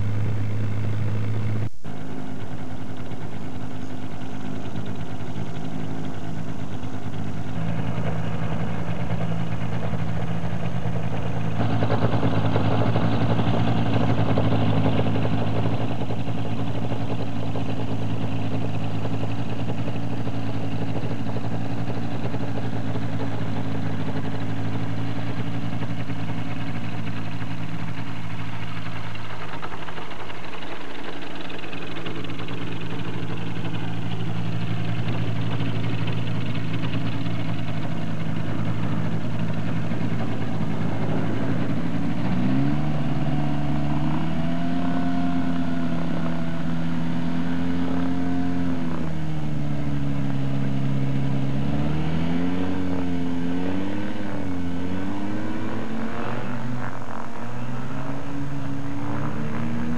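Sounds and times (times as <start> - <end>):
floatplane engine and propeller: 0.0 - 59.9.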